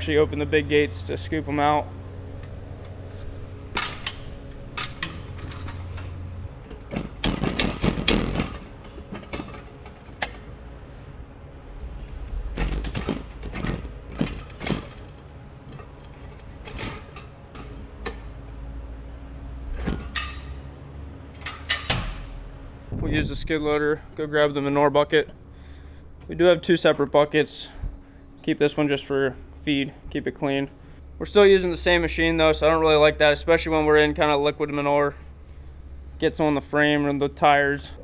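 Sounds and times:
low engine hum: 0.0s - 38.0s
metal gate clanks and rattles: 3.7s - 10.6s, 12.4s - 18.6s, 19.7s - 20.6s, 21.3s - 22.4s.

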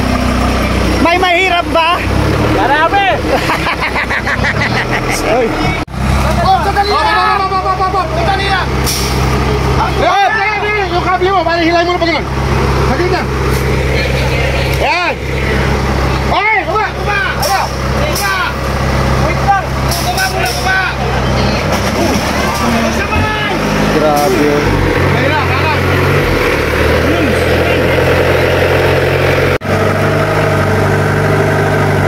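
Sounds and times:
buggy engine running at low revs: 0.0s - 32.0s
voices shouting: 5.4s - 28.2s.

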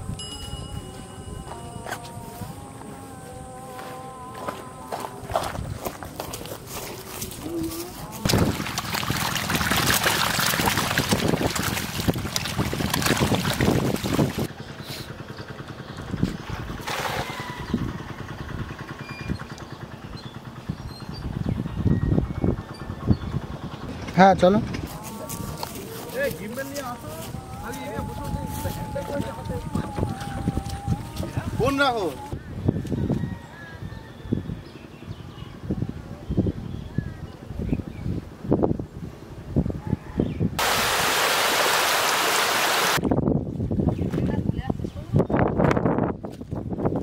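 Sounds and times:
fish splashing in water: 8.2s - 14.5s, 16.8s - 17.6s.

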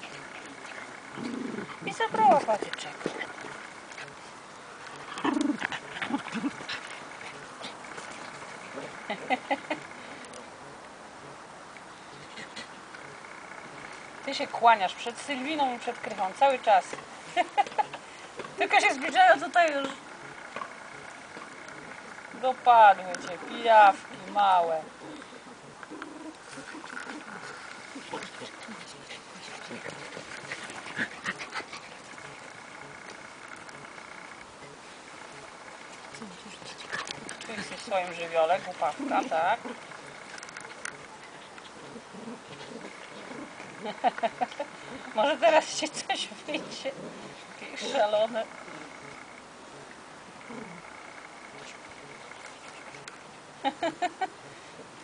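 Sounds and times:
dogs playing: 0.0s - 55.0s.

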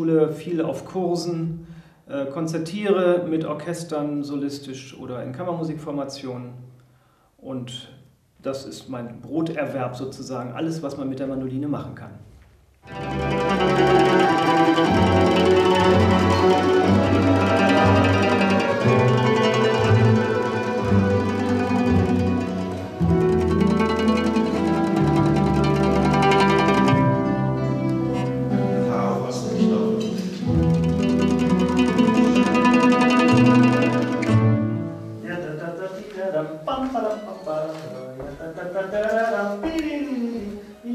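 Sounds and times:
plucked-string orchestra: 12.8s - 35.6s
double bass: 12.9s - 35.2s.

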